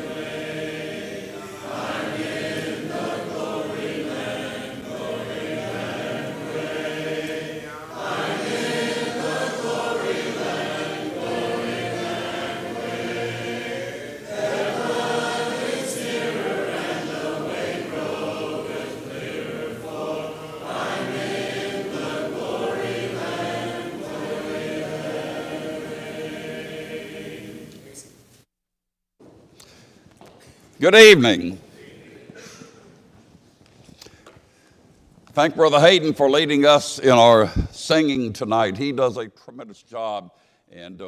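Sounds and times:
congregation singing a hymn: 0.0 - 28.1
singers breathing: 29.6 - 30.2.

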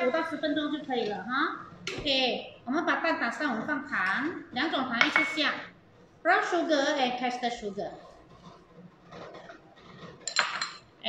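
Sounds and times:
glass clink: 10.3 - 10.8.

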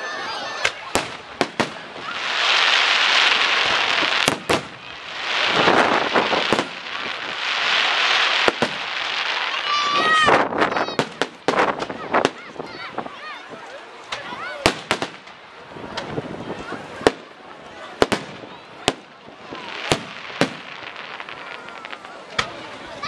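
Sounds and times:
firework crackling: 0.4 - 13.1, 14.0 - 23.0
firework bangs: 0.6 - 12.6, 14.6 - 22.7.

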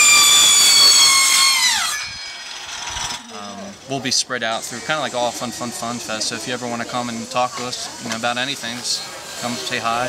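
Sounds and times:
circular saw whining and spinning down: 0.0 - 10.0.

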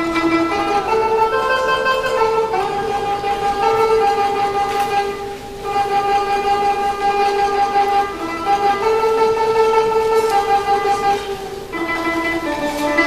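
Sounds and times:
guzheng notes: 0.0 - 13.0.

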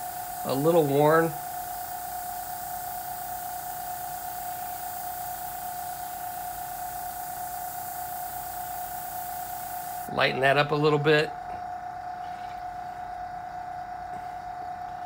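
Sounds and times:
airbrush hiss of air: 0.0 - 10.2
high whine: 0.0 - 15.0.

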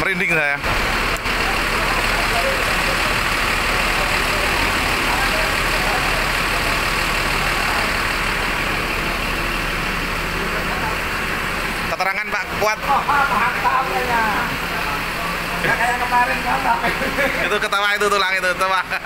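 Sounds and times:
diesel engine idling: 0.0 - 19.0
faint voices: 0.0 - 19.0.

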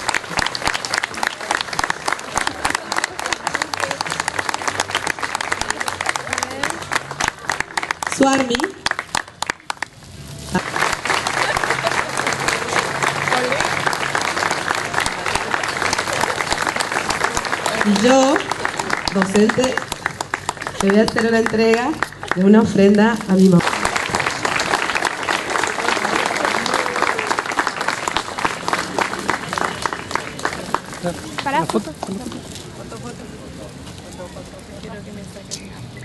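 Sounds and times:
crowd applauding: 0.0 - 32.6.

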